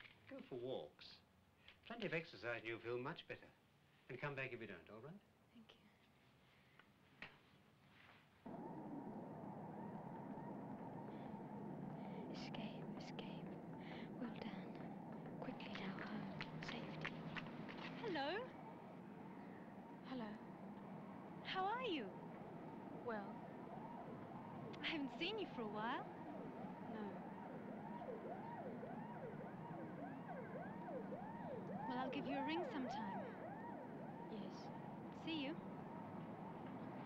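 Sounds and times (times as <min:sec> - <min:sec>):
steady low hum: 0:08.4 - 0:37.0
siren-like warbling tone: 0:08.5 - 0:37.0
person whispering: 0:12.1 - 0:14.8.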